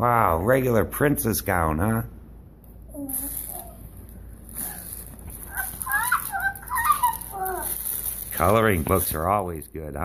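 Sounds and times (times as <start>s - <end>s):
young child squealing and babbling: 2.9s - 3.9s, 4.6s - 8.2s.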